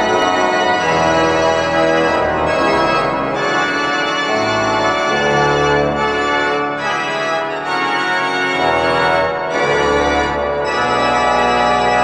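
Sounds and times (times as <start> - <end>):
organ chords: 0.0 - 12.0.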